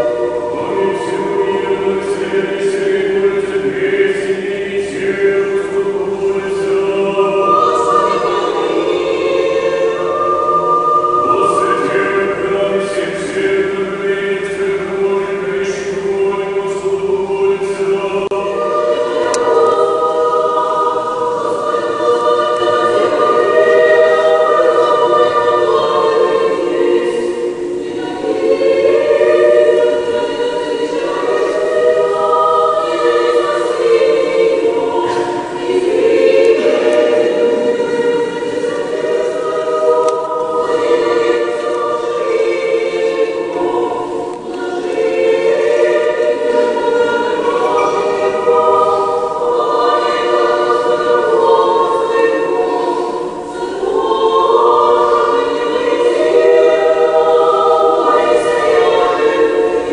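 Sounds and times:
choir breaths: 0:00.0 - 0:59.9
choir chanting unaccompanied: 0:00.0 - 0:59.9.

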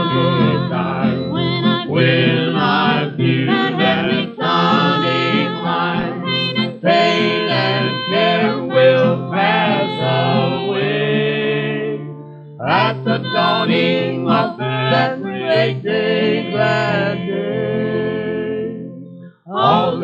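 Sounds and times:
plucked acoustic guitar: 0:00.0 - 0:20.0
vocal quartet singing in harmony: 0:00.0 - 0:20.0.

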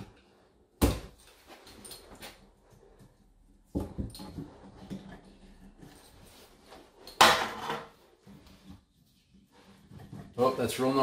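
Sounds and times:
metal tool clattering on floor: 0:07.2 - 0:07.9.

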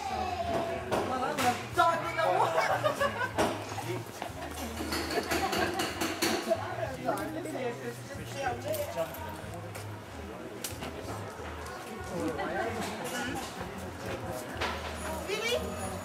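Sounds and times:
people talking at once: 0:00.0 - 0:16.0.

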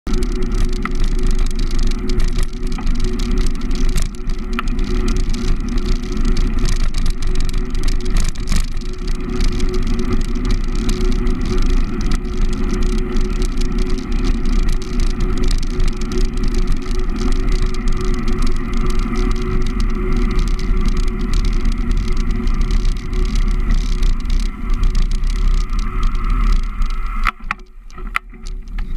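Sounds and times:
bike clicks and rattles: 0:00.0 - 0:28.9
wind rumble on microphone: 0:00.1 - 0:28.9.

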